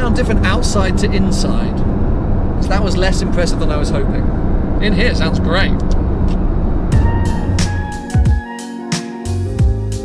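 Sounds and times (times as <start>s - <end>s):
car engine from inside cabin: 0.0s - 8.0s
music with drum hits: 6.9s - 10.0s.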